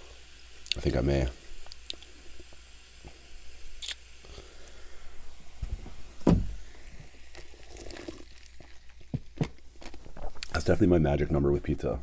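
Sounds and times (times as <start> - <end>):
cola pouring and fizzing: 1.5 - 10.6
thump: 5.7 - 6.6.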